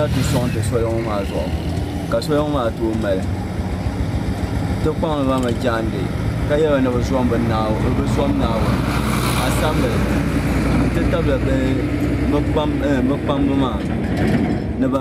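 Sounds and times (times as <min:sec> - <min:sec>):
vehicle engine humming: 0:00.0 - 0:15.0.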